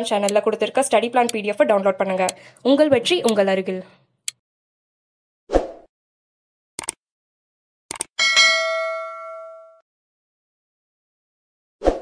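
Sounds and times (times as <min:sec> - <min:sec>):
computer mouse clicking: 0:06.8 - 0:07.0, 0:07.9 - 0:08.1
notification bell ding: 0:08.2 - 0:09.8.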